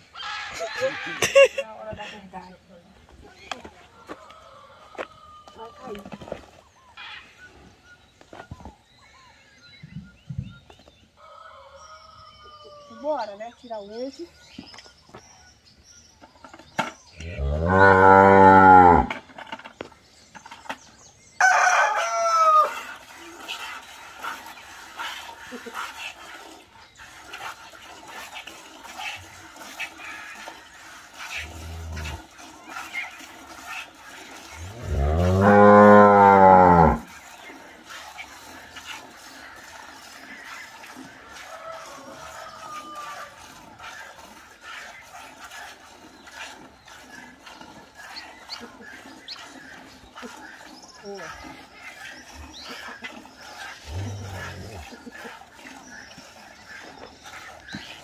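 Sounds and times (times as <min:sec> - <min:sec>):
cattle mooing: 0:17.3 - 0:19.1, 0:34.8 - 0:37.1.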